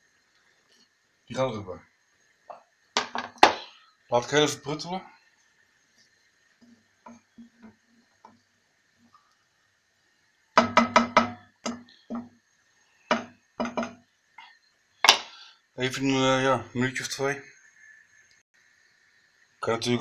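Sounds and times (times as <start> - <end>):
wooden spatula knocking on wok: 2.5 - 3.6, 10.6 - 12.4, 13.1 - 14.1.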